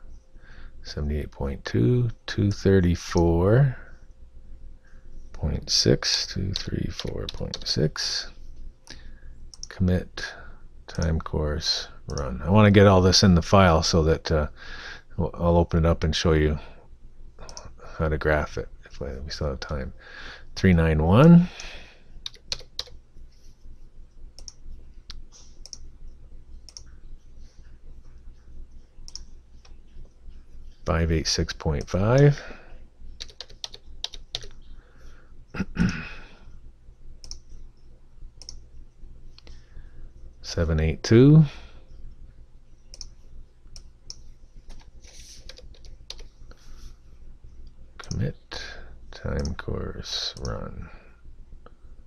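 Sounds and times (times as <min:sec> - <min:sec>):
computer keyboard typing: 0:22.2 - 0:23.0, 0:33.2 - 0:34.6, 0:44.1 - 0:46.3.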